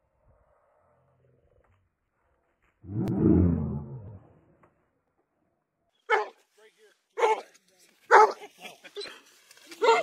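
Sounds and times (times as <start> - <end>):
dog barking: 6.1 - 6.4, 7.2 - 7.4, 8.1 - 8.5.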